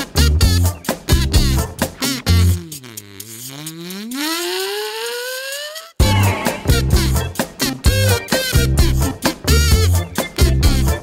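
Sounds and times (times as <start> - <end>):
electro-swing music: 0.0 - 11.0
upward gliding tone: 2.2 - 6.0.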